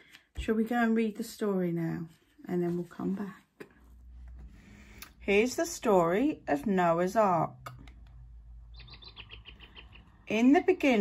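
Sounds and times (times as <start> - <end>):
low steady hum: 2.0 - 11.0
bird chirping trill: 8.6 - 10.5.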